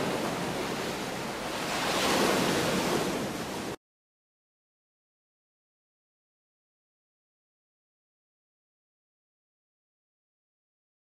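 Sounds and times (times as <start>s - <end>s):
ocean surf on a beach: 0.0s - 3.8s.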